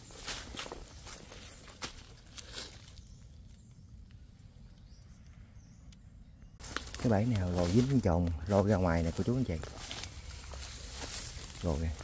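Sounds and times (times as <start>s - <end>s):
footsteps through dry grass: 0.0s - 3.2s, 6.6s - 12.0s.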